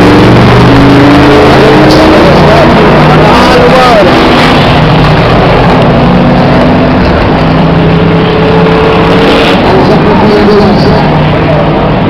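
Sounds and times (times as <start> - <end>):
loud rushing noise: 0.0 - 12.0
race car engines: 0.0 - 12.0.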